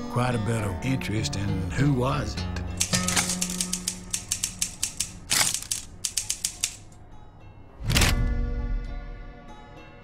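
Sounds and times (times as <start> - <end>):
typewriter keys clicking: 2.8 - 6.9.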